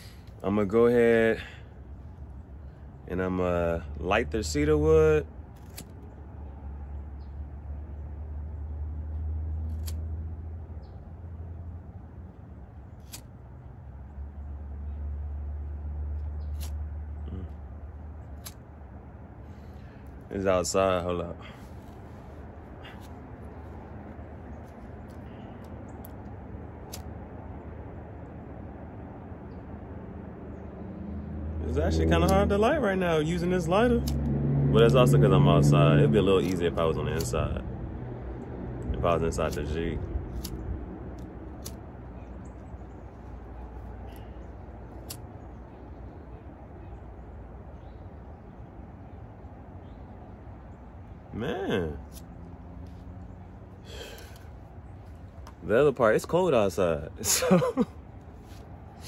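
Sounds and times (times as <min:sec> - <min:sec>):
low outdoor background: 0:00.0 - 0:59.0.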